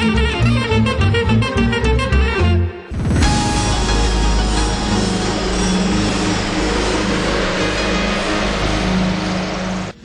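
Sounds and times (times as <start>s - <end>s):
dense steady tv music: 2.9s - 10.0s.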